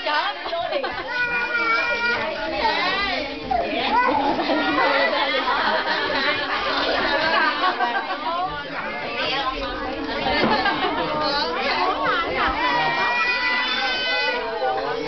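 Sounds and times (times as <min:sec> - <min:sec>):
crowd talking and calling: 0:00.0 - 0:15.0.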